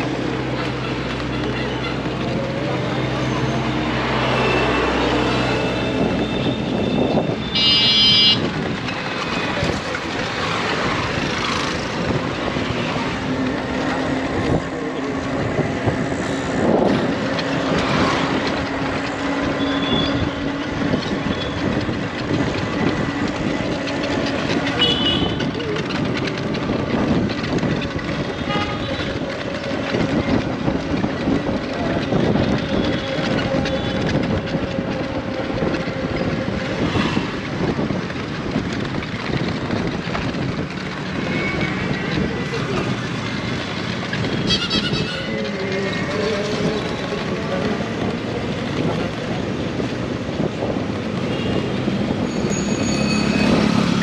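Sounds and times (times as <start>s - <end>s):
road and traffic noise: 0.0s - 54.0s.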